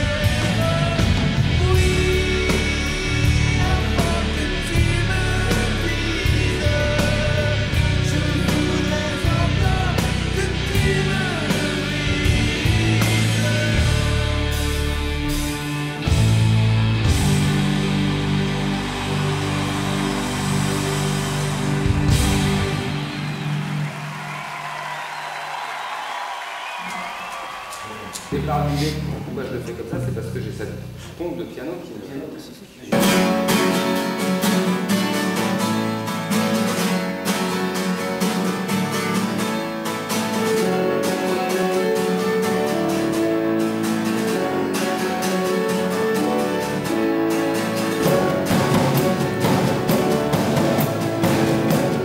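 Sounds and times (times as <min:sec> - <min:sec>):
acoustic guitar strumming: 0:00.0 - 0:24.2, 0:32.9 - 0:52.0
rock band playing live: 0:00.0 - 0:25.7, 0:32.9 - 0:52.0.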